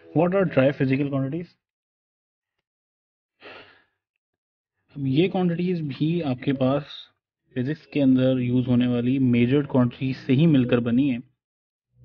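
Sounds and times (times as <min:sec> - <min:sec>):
man speaking: 0:00.0 - 0:01.6, 0:05.0 - 0:11.4
man breathing: 0:03.4 - 0:04.1.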